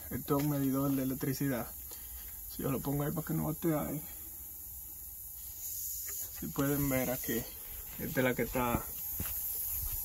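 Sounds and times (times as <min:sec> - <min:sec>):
compressed air hissing: 0:00.0 - 0:10.0.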